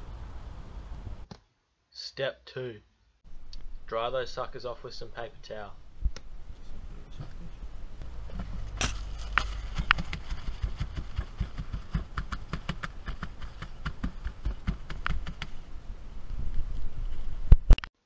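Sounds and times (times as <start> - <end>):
low handling rumble: 3.3 - 17.6.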